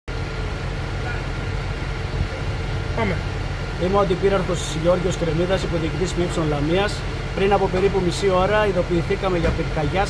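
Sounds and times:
fire engine idling: 0:00.1 - 0:10.0.

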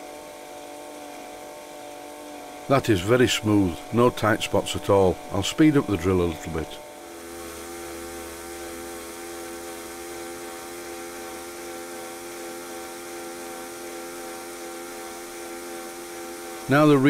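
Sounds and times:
electric drill motor whine: 0:00.0 - 0:17.0.

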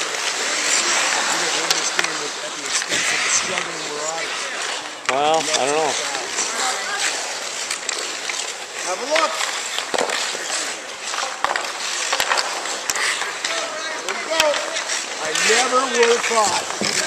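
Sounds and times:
hockey sticks and puck clacking: 0:00.0 - 0:17.0
skates scraping on ice: 0:00.0 - 0:17.0.

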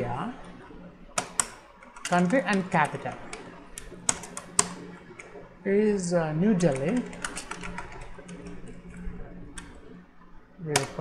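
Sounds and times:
keyboard keystrokes: 0:06.6 - 0:08.5, 0:10.7 - 0:11.0.

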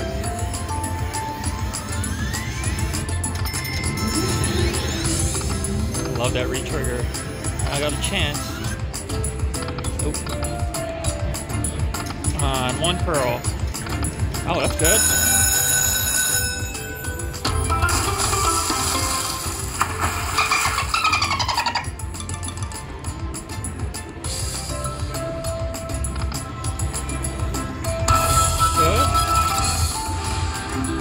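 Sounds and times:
slot machine bonus music: 0:00.0 - 0:31.0
slot machine chime effects: 0:03.3 - 0:05.3, 0:14.5 - 0:19.8, 0:28.1 - 0:30.7.

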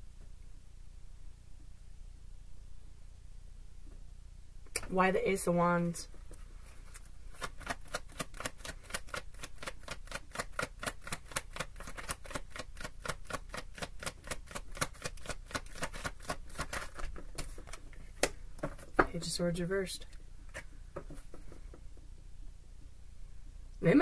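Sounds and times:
cards being shuffled: 0:06.6 - 0:19.0.

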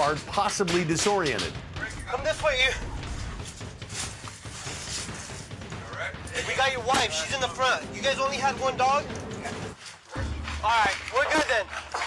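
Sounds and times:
house fire crackling and rushing: 0:00.0 - 0:12.0.

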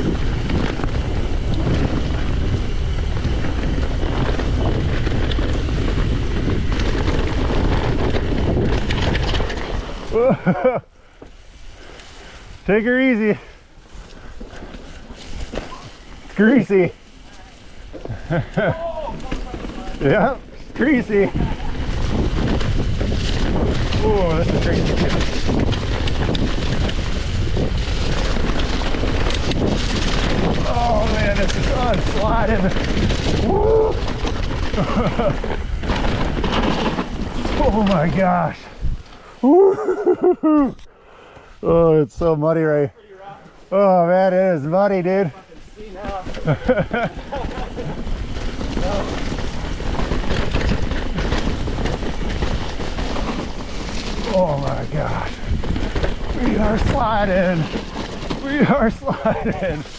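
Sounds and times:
wind rush on microphone: 0:00.0 - 0:10.4, 0:11.5 - 0:39.4, 0:46.2 - 0:59.9
bike clicks and rattles: 0:00.0 - 0:41.5, 0:44.6 - 0:59.9
bike tyre rumble on dirt: 0:00.0 - 0:42.6, 0:43.2 - 0:59.9
man laughing: 0:10.1 - 0:10.9, 0:18.1 - 0:19.2, 0:34.7 - 0:35.5, 0:39.4 - 0:40.8, 0:46.4 - 0:48.0, 0:58.6 - 0:59.9.

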